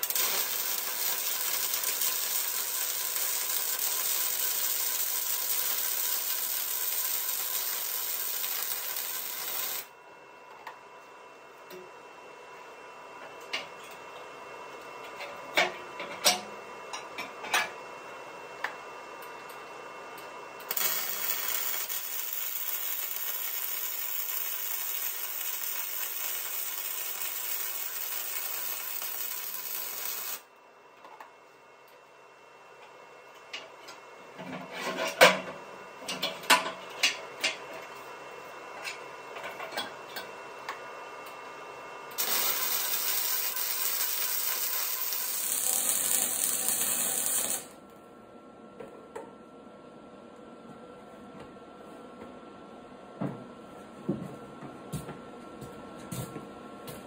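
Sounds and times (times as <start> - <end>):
welding arc hiss and crackle: 0.0 - 9.9, 20.6 - 30.5, 42.1 - 47.8.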